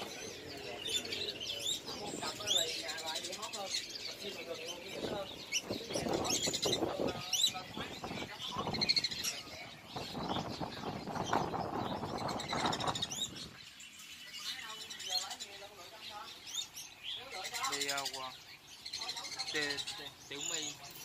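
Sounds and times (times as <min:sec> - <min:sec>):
murmur of voices: 0:00.0 - 0:21.0
songbirds chirping: 0:00.0 - 0:21.0.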